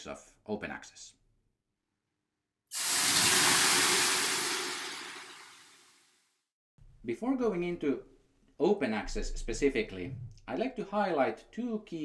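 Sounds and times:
water sizzling on hot stones: 2.7 - 5.9.

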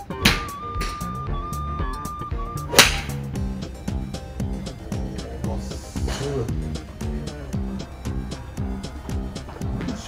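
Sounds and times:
golf club striking ball: 2.7 - 3.3.

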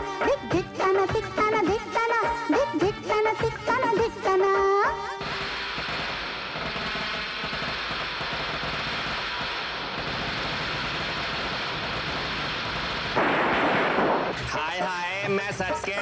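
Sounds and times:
person singing: 0.0 - 5.2, 14.5 - 16.0
firecrackers crackling: 5.1 - 16.0.

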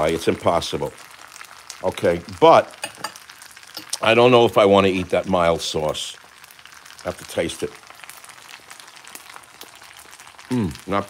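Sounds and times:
frying pan sizzling and crackling: 0.0 - 11.0.

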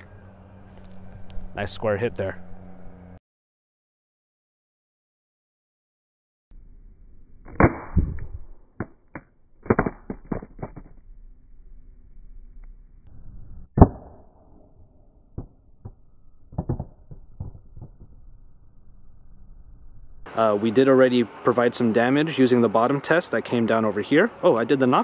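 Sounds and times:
phone hitting asphalt: 7.5 - 11.0, 15.2 - 18.3.

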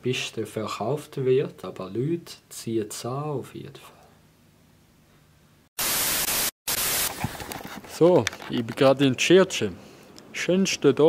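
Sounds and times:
background noise: 0.0 - 11.0
television static hiss: 5.8 - 7.2.

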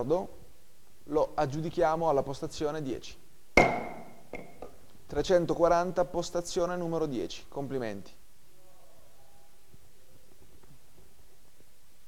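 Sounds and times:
gavel knocking: 3.6 - 4.8.

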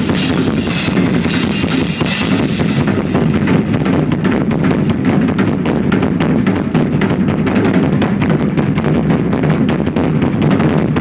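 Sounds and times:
cymbal: 0.0 - 11.0
tom and bass drum strokes: 0.0 - 11.0.

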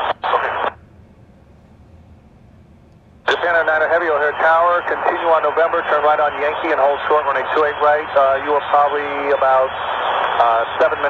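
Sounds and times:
voice over radio: 0.0 - 0.8, 3.3 - 11.0
faint radio hiss: 0.0 - 2.3, 3.2 - 11.0.

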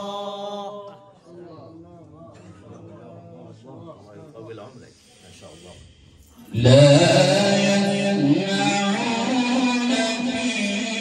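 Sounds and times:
quran recitation: 0.0 - 2.0, 6.5 - 11.0.

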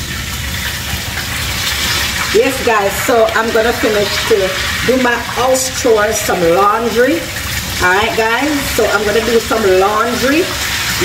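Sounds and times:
food frying in a pan: 0.0 - 11.0.

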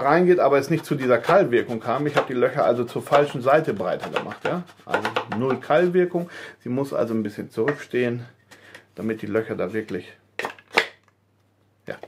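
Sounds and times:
wooden pieces knocking together: 4.0 - 5.6.

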